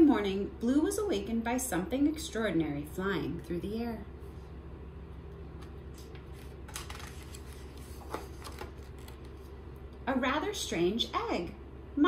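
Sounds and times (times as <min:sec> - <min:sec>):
low room hum: 0:00.0 - 0:12.0
book page turning: 0:05.9 - 0:09.6.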